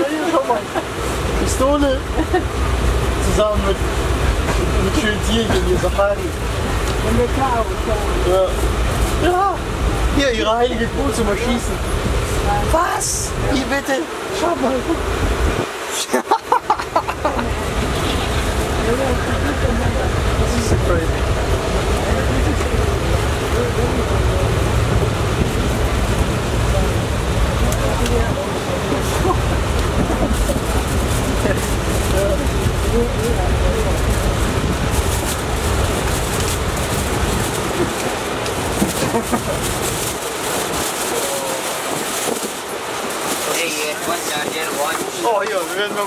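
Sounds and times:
voices talking: 0:00.0 - 0:34.8
train rumble: 0:00.0 - 0:46.0.

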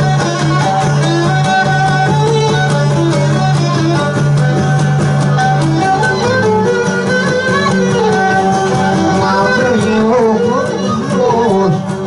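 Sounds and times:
folk music on lutes: 0:00.0 - 0:12.0.

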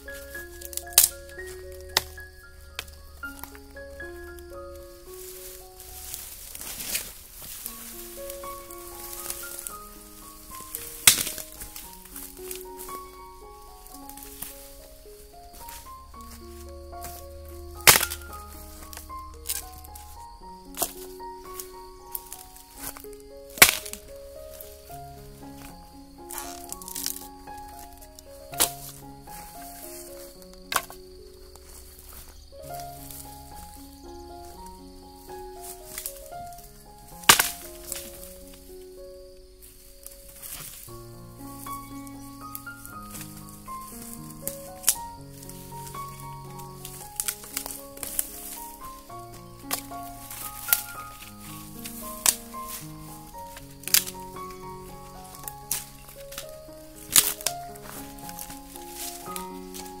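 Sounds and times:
background music: 0:00.0 - 1:00.0
stick snapping dry branches: 0:00.2 - 0:03.7, 0:05.9 - 0:13.1, 0:15.6 - 0:24.8, 0:25.4 - 0:33.9, 0:35.6 - 0:38.7, 0:39.7 - 0:40.9, 0:41.6 - 1:00.0.

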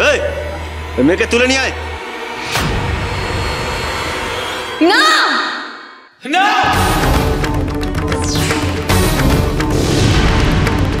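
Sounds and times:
low held drone: 0:00.0 - 0:04.9.

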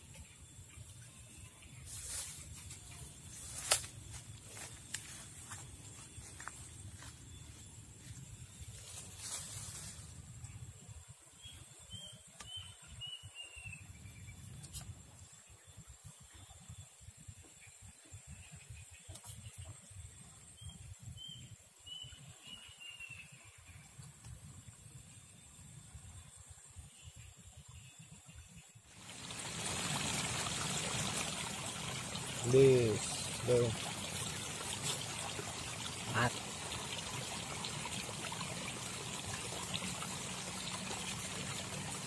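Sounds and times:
faint bird chirps: 0:11.4 - 0:24.6
trickling water: 0:28.9 - 0:42.0.

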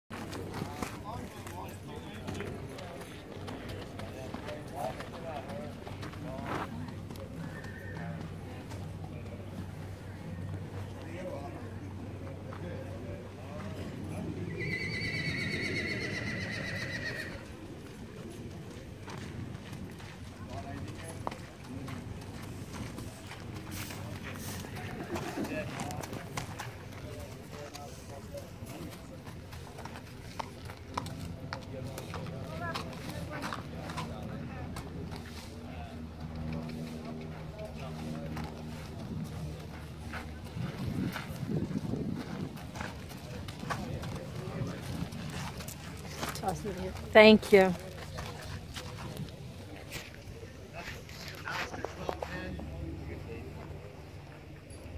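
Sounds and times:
hooves walking on gravel: 0:00.1 - 0:14.0, 0:16.0 - 0:54.9
people talking: 0:00.1 - 0:54.9.

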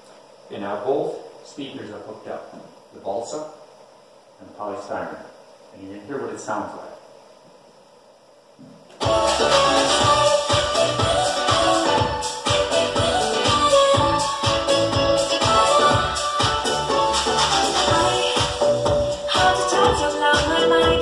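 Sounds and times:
music with steady beat: 0:09.0 - 0:21.0.

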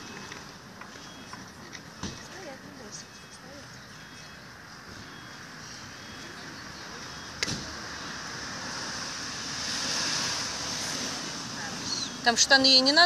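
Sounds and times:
passing vehicle rushing: 0:04.6 - 0:13.0.

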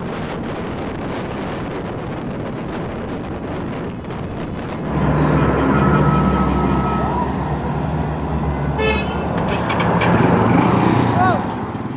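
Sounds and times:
armored vehicle engine driving by: 0:02.8 - 0:11.9
brief tooting tone: 0:04.9 - 0:07.7.

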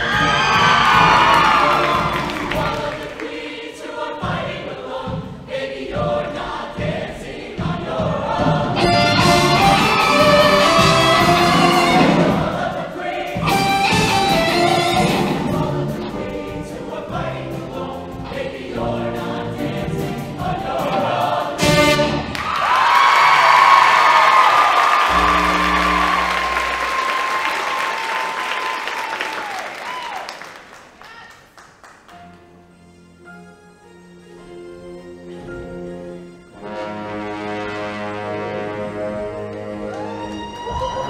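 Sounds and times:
audience applauding: 0:00.0 - 0:03.4, 0:22.3 - 0:32.1
choir singing: 0:00.0 - 0:22.8, 0:23.6 - 0:28.4, 0:35.0 - 0:41.0
backing band: 0:00.0 - 0:29.0, 0:34.1 - 0:40.8.

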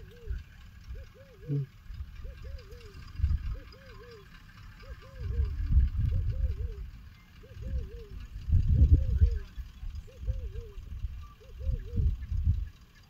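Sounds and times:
bird warbling call: 0:00.0 - 0:13.0
low rumbles: 0:00.0 - 0:13.0.

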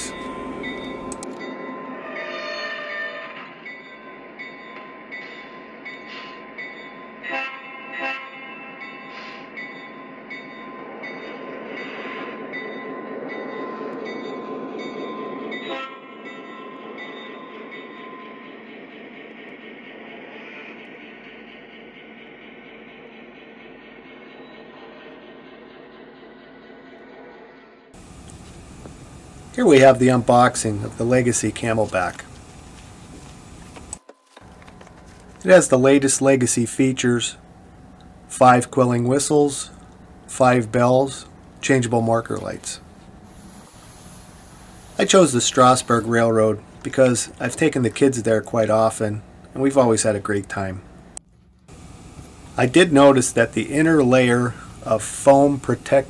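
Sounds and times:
train rolling on track: 0:00.0 - 0:56.0
train horn blasts: 0:02.0 - 0:03.5, 0:07.2 - 0:08.5, 0:15.7 - 0:16.0
diesel engine rumble: 0:28.0 - 0:35.5, 0:51.0 - 0:56.0.

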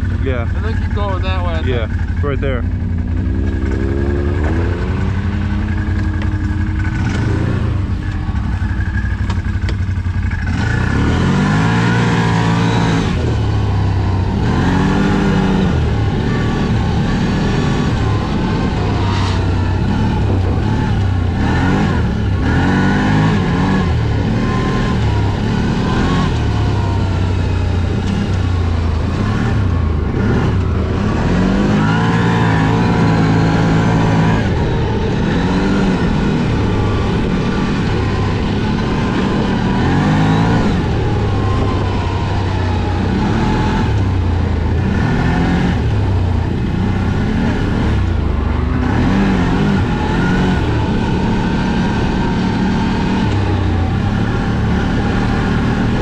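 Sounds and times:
off-road vehicle engine revving: 0:00.0 - 0:56.0.

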